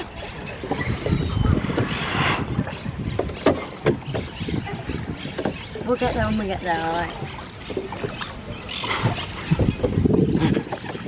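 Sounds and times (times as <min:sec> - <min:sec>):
oars splashing in water: 0:00.0 - 0:11.0.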